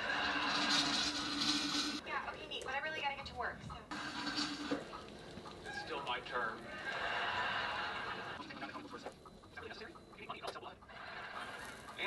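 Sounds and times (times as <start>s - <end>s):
television programme: 0.0s - 12.0s
people talking: 2.0s - 3.9s, 8.6s - 10.8s.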